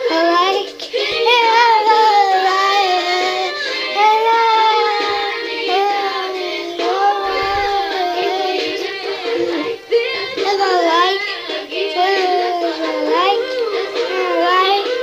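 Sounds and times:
girl singing long wavering notes: 0.0 - 15.0.

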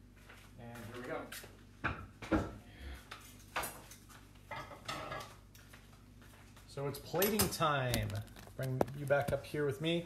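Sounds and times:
kitchenware clinking on countertop: 7.1 - 8.2.

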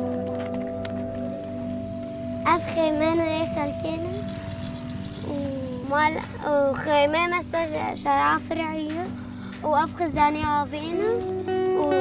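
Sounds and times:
motorbike engine rumble: 0.0 - 9.4
girl speaking: 2.4 - 4.4, 5.2 - 12.0.

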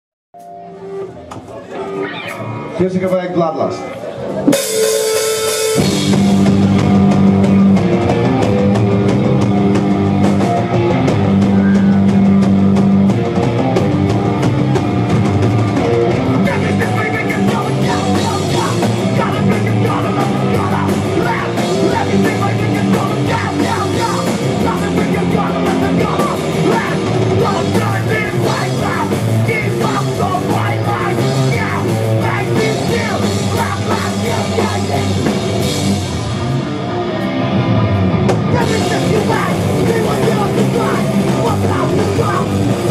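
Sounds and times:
rock band playing live: 0.4 - 42.9
lead vocalist singing: 16.4 - 35.6, 38.4 - 42.9.

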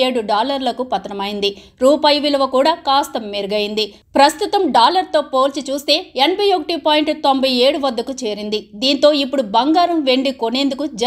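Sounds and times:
woman narrating: 0.0 - 11.0.

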